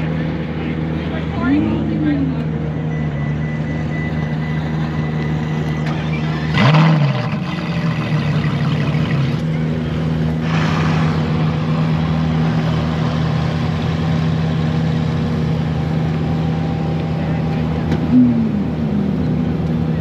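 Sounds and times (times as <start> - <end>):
car engine idling and revving: 0.0 - 20.0.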